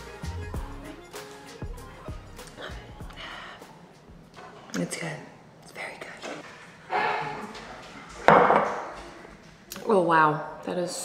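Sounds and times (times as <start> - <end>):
glass jar clunk on countertop: 8.3 - 8.8.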